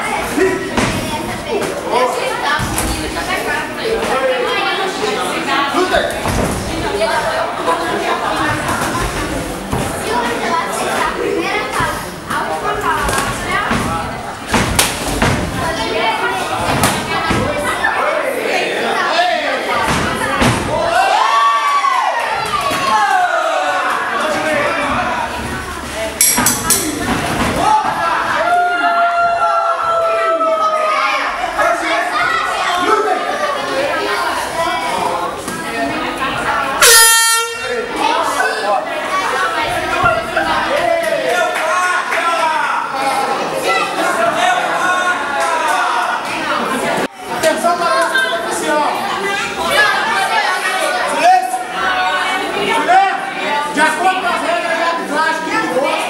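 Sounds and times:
people calling out: 0.0s - 47.1s
crowd chatter: 0.0s - 56.0s
loud horn blast: 36.8s - 37.9s.

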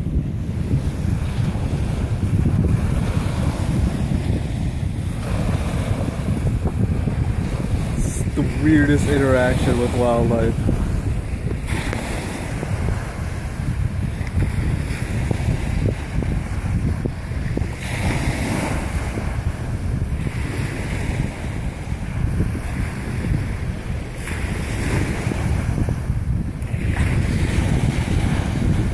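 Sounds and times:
surf washing on beach: 0.0s - 28.9s
wind buffeting microphone: 0.0s - 28.9s.

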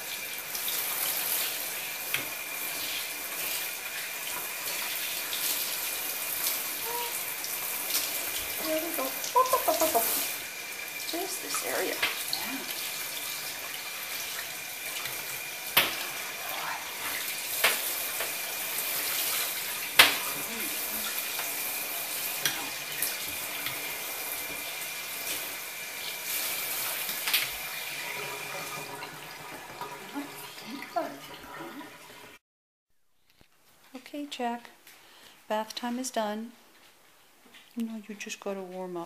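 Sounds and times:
shower head spraying water: 0.0s - 30.3s.

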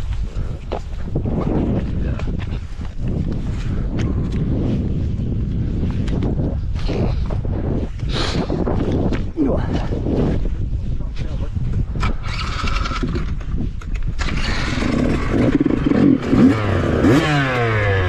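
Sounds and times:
footsteps through heather: 0.0s - 11.8s
wind buffeting microphone: 0.0s - 18.0s.

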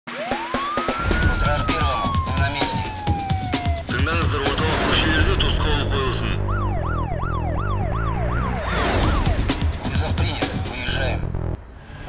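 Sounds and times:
siren-like wail: 0.1s - 9.4s
heavy beat with percussive hits: 0.2s - 4.9s, 9.0s - 10.9s.

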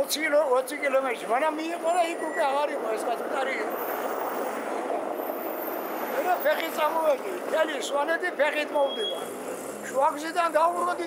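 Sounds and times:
elderly man talking: 0.0s - 3.8s, 6.1s - 11.0s
distant street traffic rumble: 0.0s - 11.0s.

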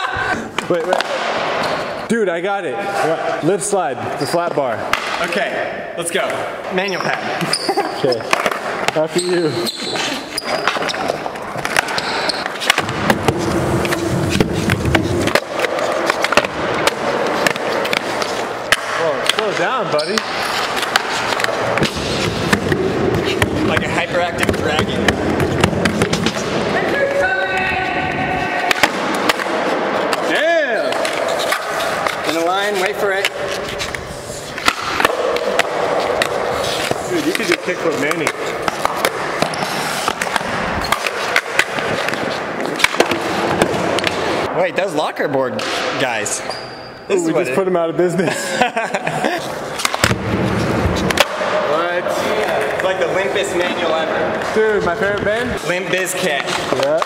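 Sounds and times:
people calling out and laughing: 26.7s - 28.8s.

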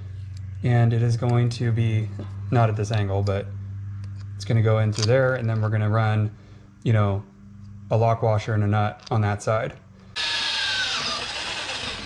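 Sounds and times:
electric drill drilling: 10.2s - 12.0s.

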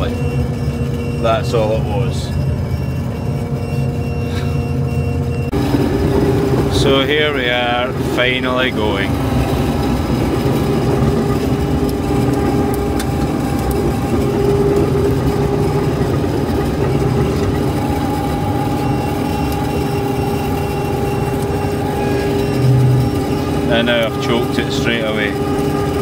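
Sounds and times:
combine harvester drone: 0.0s - 26.0s
machine whine: 0.0s - 26.0s.

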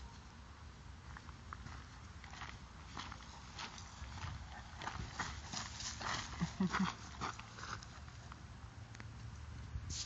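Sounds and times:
faint outdoor background noise: 0.0s - 10.0s
short breathy laugh: 6.3s - 7.1s.

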